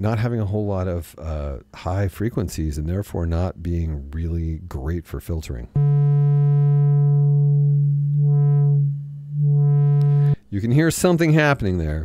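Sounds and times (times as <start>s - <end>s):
synthesizer low note with filter sweep: 5.8s - 10.5s.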